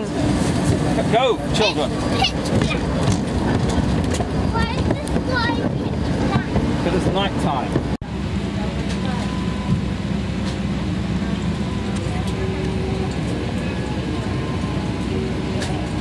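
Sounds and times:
airliner cabin air hum: 0.0s - 16.0s
faint passenger voices: 0.0s - 16.0s.

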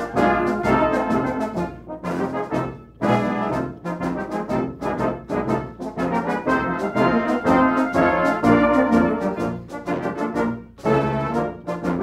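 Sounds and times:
brass band playing a march: 0.0s - 12.0s.

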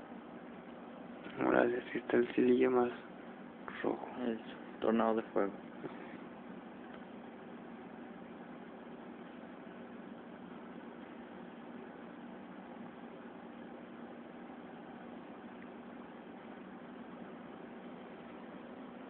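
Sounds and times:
faint low hum: 0.0s - 19.0s
steady background hiss: 0.0s - 19.0s.

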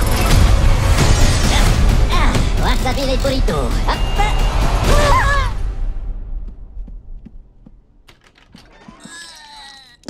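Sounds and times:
child footsteps on hard floor: 6.4s - 9.3s.

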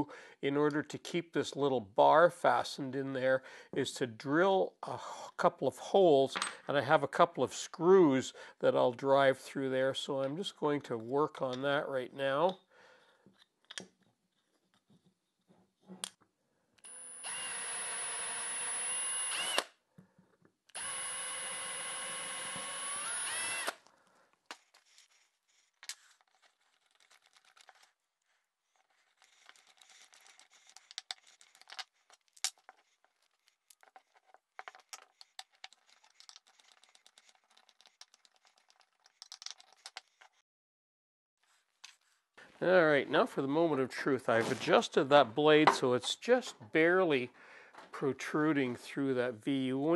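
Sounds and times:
cordless drill whining: 16.8s - 19.8s, 20.7s - 23.9s
screwdriver clicking and scraping: 20.7s - 23.9s, 24.5s - 26.6s, 29.1s - 40.4s.

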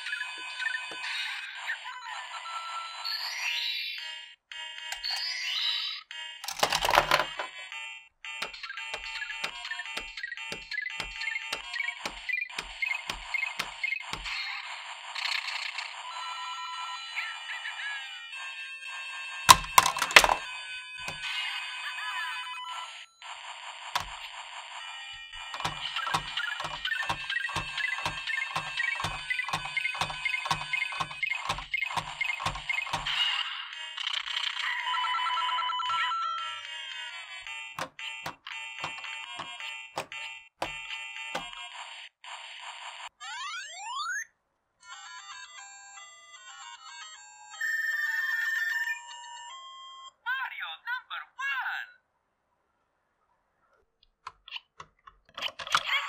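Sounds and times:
loud plastic clacks: 6.4s - 7.5s, 8.4s - 14.4s, 19.5s - 21.3s, 24.0s - 24.2s, 25.4s - 33.2s, 38.8s - 40.8s, 41.4s - 41.6s
electronic video game tunes: 25.4s - 33.2s.

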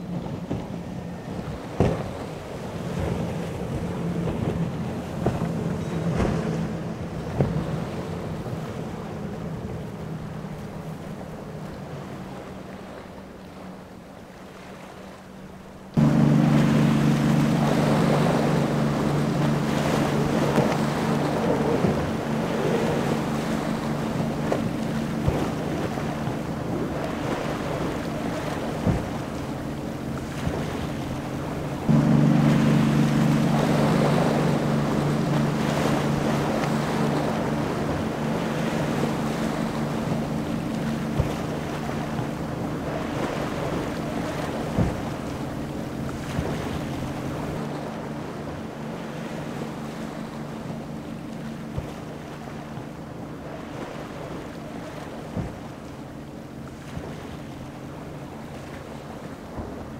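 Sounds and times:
outboard motor drone: 0.0s - 59.9s
hull spray: 15.9s - 59.9s.

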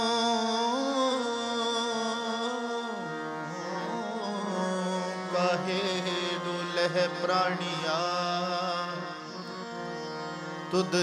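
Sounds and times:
man singing melodic line: 0.0s - 9.7s, 10.6s - 11.0s.

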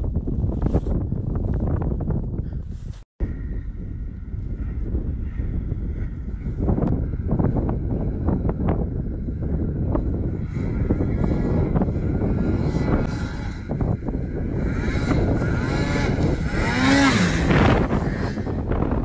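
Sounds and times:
wind rumble on microphone: 0.0s - 19.0s
snowmobile engine droning: 3.2s - 19.0s.

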